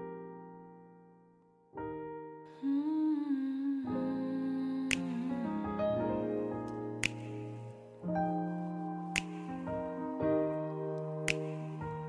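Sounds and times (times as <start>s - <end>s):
soft piano chords: 0.0s - 12.0s
woman humming: 2.6s - 6.0s.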